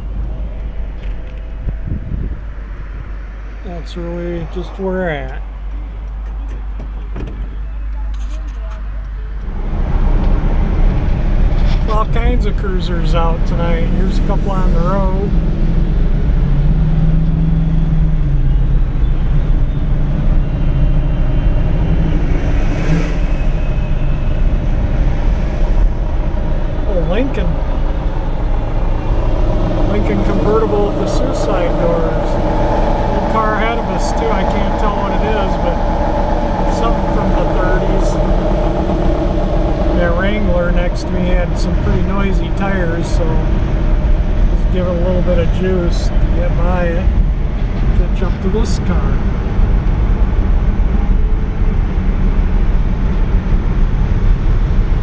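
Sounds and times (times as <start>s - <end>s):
car engine and road rumble: 0.0s - 55.0s
vehicle passing: 8.8s - 55.0s.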